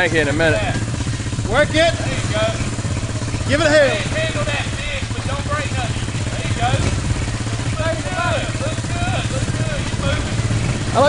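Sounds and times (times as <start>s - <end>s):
engine running at low revs: 0.0s - 11.0s
vehicle wading through water: 0.0s - 11.0s
voices calling out: 0.0s - 11.0s.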